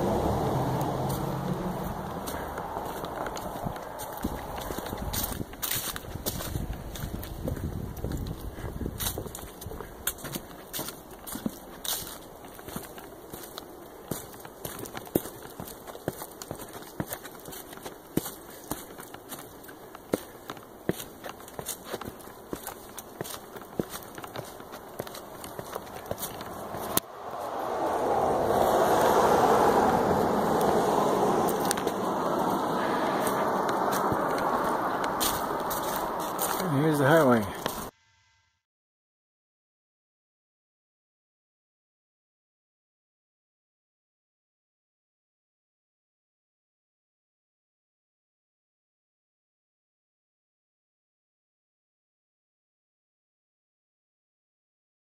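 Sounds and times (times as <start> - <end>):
footsteps crunching on trail: 0.0 - 37.9.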